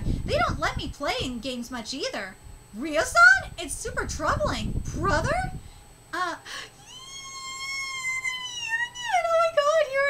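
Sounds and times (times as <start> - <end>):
woman squealing with delight: 6.8 - 9.1.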